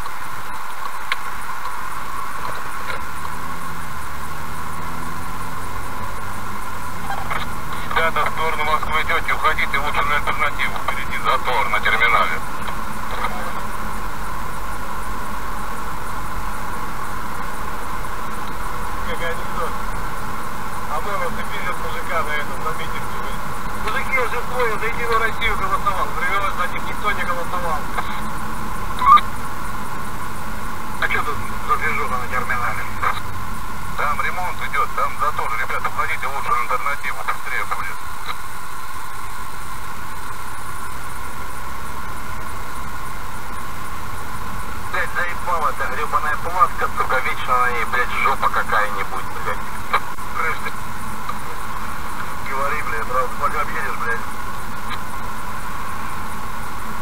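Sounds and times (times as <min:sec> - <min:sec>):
road and engine noise: 0:00.0 - 0:57.0
muffled talking: 0:07.0 - 0:13.8, 0:19.0 - 0:19.9, 0:20.8 - 0:28.4, 0:31.0 - 0:33.3, 0:34.0 - 0:38.4, 0:44.9 - 0:50.8, 0:52.2 - 0:54.3.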